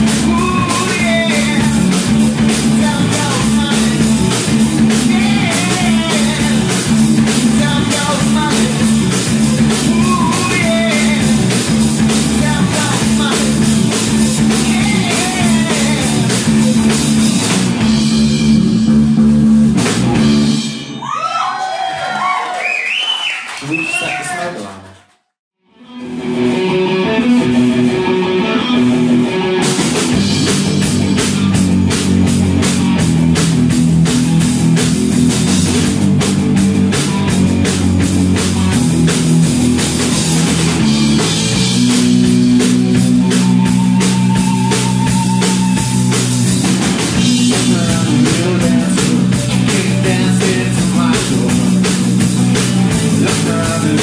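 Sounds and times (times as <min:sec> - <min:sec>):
electric guitars: 0:00.0 - 0:21.0, 0:25.7 - 0:54.0
bass guitar: 0:00.0 - 0:22.3, 0:25.6 - 0:54.0
drum kit: 0:00.0 - 0:22.4, 0:25.9 - 0:54.0
sliding high guitar notes: 0:25.8 - 0:33.3, 0:38.6 - 0:50.3.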